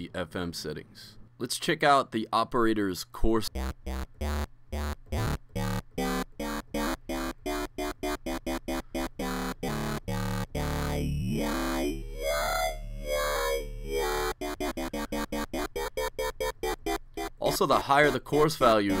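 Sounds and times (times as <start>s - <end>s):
talking wobble bass synth: 3.5s - 19.0s.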